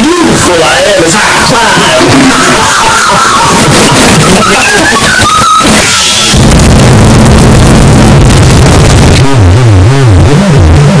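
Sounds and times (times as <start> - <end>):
shrill distorted high pitches: 0.0 - 11.0
harsh buzzing low drone: 1.3 - 11.0.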